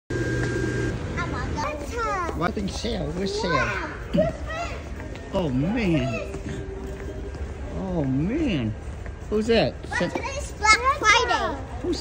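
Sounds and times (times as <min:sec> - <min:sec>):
young child's voice: 0:01.1 - 0:02.4, 0:03.4 - 0:05.0, 0:09.9 - 0:12.0.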